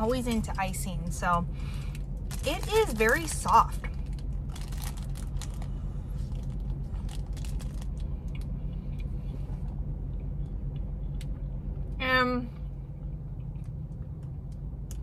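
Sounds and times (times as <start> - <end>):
car engine idling: 0.0 - 15.0
plastic wrapper crinkling: 1.8 - 8.1
person chewing: 4.7 - 11.6.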